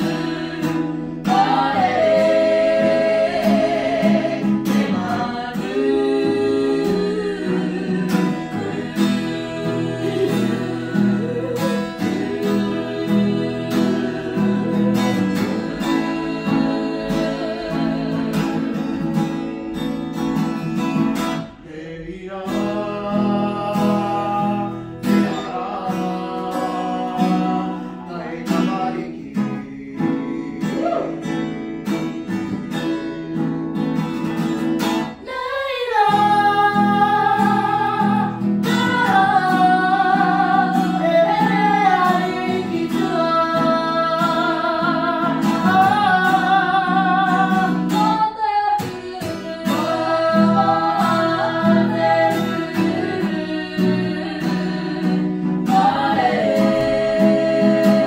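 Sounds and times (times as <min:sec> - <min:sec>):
woman singing: 0:00.0 - 0:19.8, 0:21.6 - 0:31.4, 0:35.0 - 0:58.0
strummed acoustic guitar: 0:00.0 - 0:58.0.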